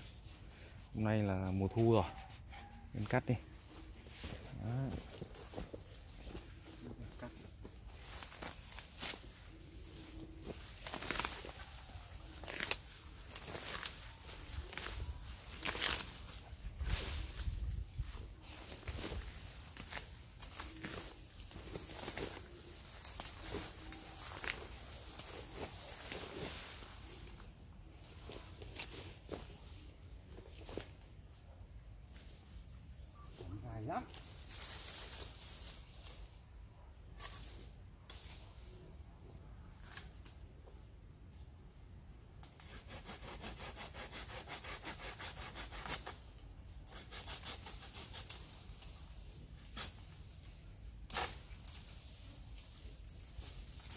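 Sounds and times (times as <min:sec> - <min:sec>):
branches rustling and snapping: 0:05.0 - 0:31.1, 0:34.1 - 0:36.3, 0:37.2 - 0:38.5, 0:47.7 - 0:53.9.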